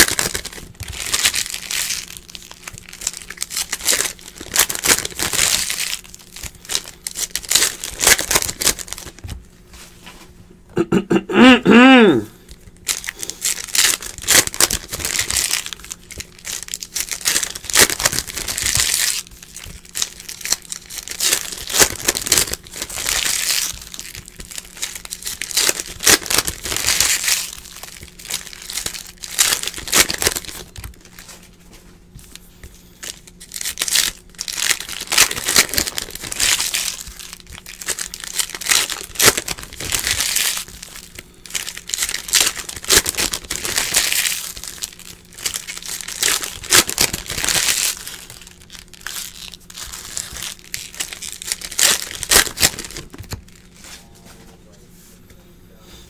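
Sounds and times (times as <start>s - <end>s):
foil wrappers crinkling and tearing: 0.0s - 9.4s, 12.4s - 54.5s
faint low hum: 0.0s - 56.0s.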